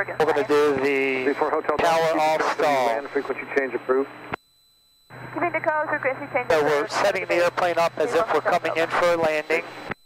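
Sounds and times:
man speaking: 0:00.3 - 0:04.1, 0:06.5 - 0:09.6.

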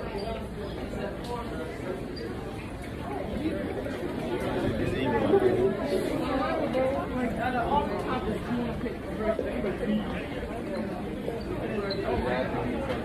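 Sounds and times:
background chatter: 0:00.0 - 0:13.0.

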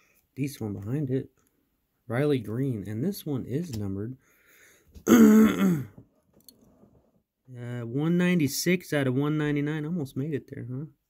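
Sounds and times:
man coughing: 0:05.0 - 0:06.0.

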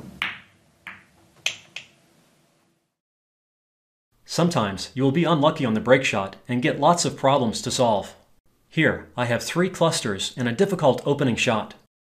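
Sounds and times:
pool balls clicking: 0:00.0 - 0:02.0.

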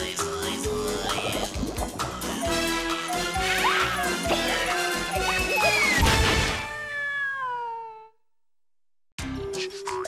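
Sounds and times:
cartoon theme music: 0:00.4 - 0:07.0.

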